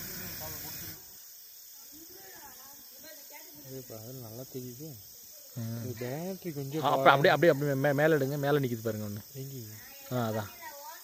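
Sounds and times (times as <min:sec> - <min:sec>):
crickets chirping: 0:00.0 - 0:11.0
faint high-pitched insect hum: 0:00.0 - 0:11.0.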